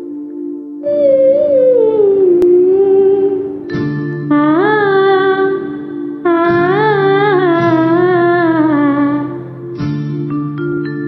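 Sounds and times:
karaoke backing track: 0.0 - 11.0
woman singing a long note: 0.8 - 9.5.

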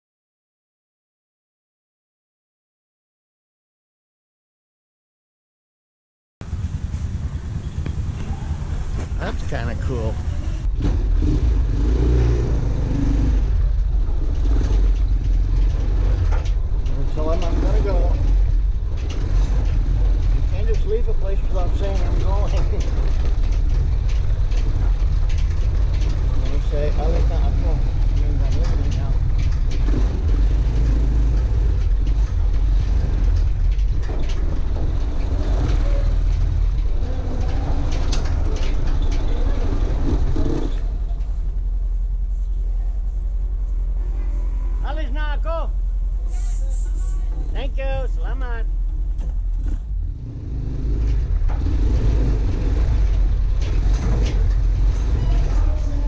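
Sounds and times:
motor tricycle engine rumbling: 6.4 - 56.0.

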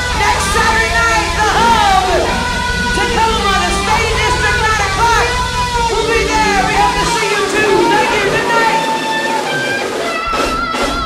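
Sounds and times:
long bending notes: 0.0 - 10.6
blues band playing: 0.0 - 11.0.

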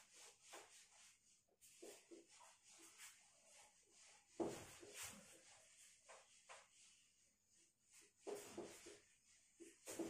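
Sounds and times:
eraser rubbing a whiteboard: 0.0 - 10.0.

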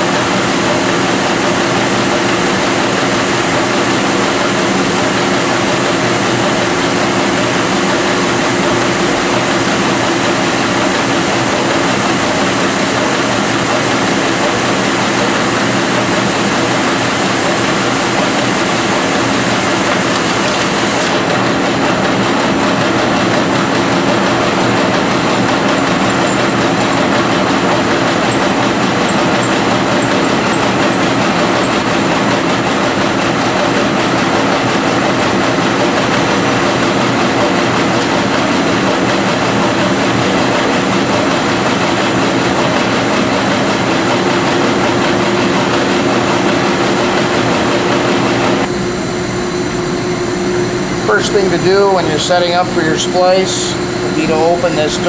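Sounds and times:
printing press machine noise: 0.0 - 55.0.

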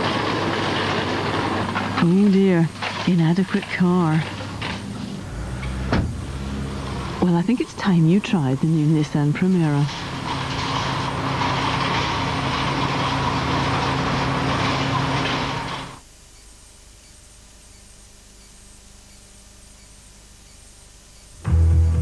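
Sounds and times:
low hum: 4.6 - 13.3
car rushing noise: 4.9 - 7.3.

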